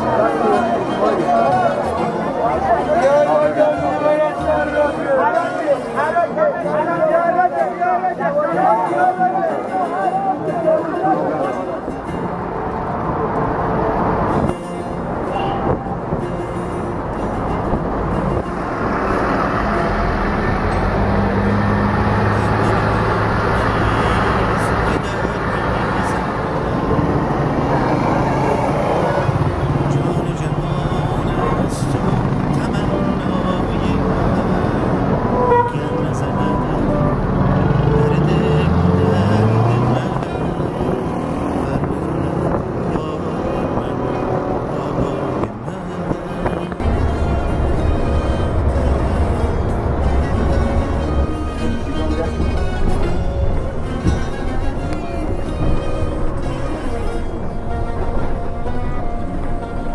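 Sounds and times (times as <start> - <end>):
background voices: 0.0 - 59.9
car horns tooting: 0.0 - 59.9
car engines running: 10.2 - 59.9.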